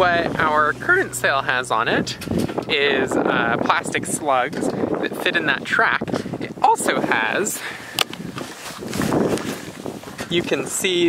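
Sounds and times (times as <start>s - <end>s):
jacket fabric rustling: 8.1s - 10.4s
knit glove rubbing microphone: 8.2s - 10.2s.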